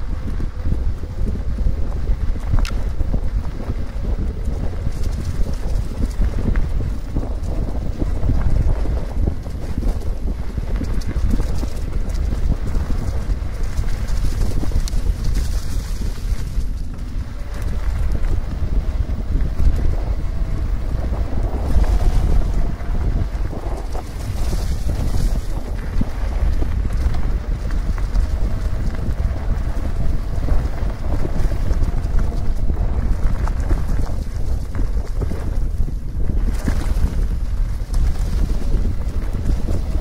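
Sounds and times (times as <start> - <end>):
tyres rolling on gravel: 0.0 - 40.0
wind buffeting microphone: 0.0 - 40.0.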